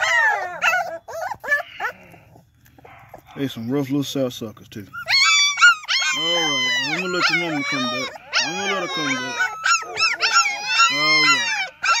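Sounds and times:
puppies whining: 0:00.0 - 0:04.0, 0:04.8 - 0:12.0.

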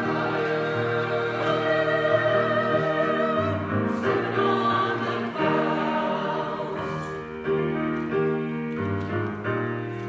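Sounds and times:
choir singing gospel song: 0:00.0 - 0:07.3.

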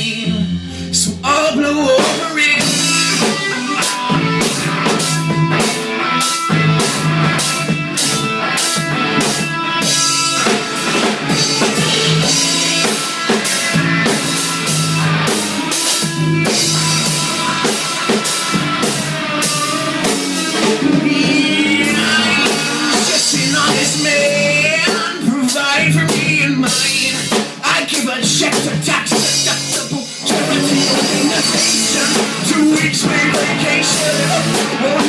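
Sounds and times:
drum kit beat: 0:00.0 - 0:35.0
electric guitars: 0:00.0 - 0:35.0.

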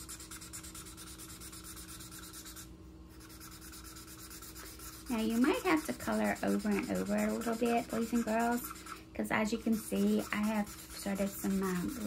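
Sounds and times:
marker scribbling on paper: 0:00.0 - 0:12.0.

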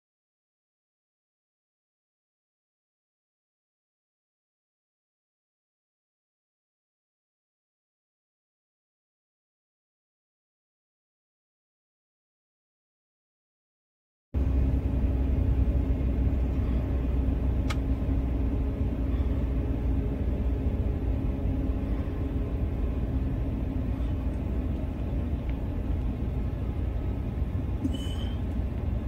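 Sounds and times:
moving vehicle rumble: 0:14.4 - 0:29.0
faint click: 0:17.6 - 0:17.8.

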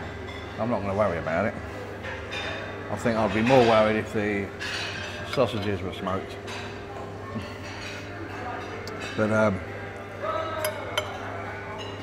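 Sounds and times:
cutlery clinking on a plate: 0:04.6 - 0:05.8, 0:10.6 - 0:12.0.

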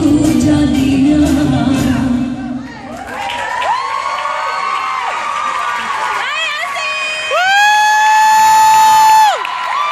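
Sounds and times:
crowd cheering: 0:02.7 - 0:09.9.

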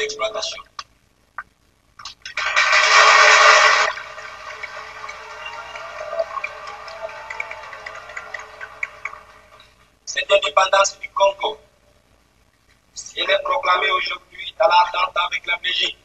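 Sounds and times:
audience applauding: 0:02.0 - 0:09.8.

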